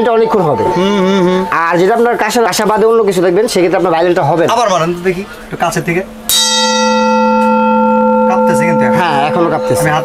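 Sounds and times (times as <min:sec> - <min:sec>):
metal bowl ringing: 0:06.2 - 0:10.0
metal spoon striking metal bowl: 0:06.3 - 0:10.0.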